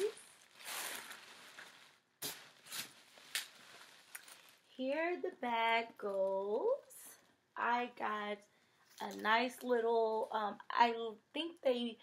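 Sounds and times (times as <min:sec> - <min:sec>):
plastic bag crinkling: 0:00.0 - 0:04.8.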